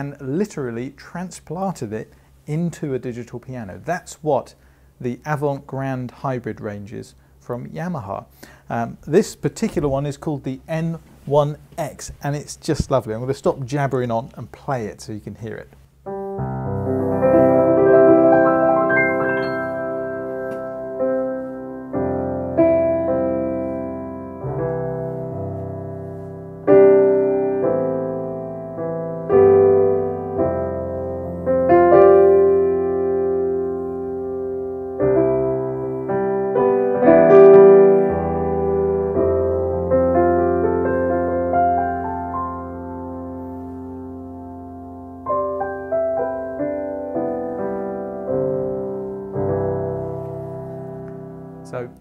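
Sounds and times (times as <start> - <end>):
piano chords: 16.0 - 52.0.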